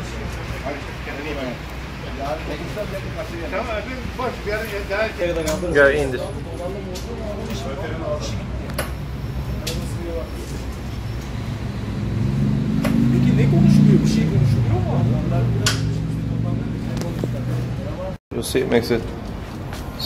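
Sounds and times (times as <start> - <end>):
men's voices talking: 0.0 - 11.0, 12.8 - 20.0.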